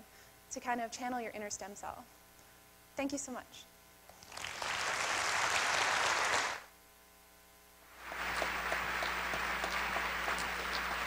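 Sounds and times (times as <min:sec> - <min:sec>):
audience applauding: 0:04.2 - 0:06.7, 0:08.0 - 0:11.0.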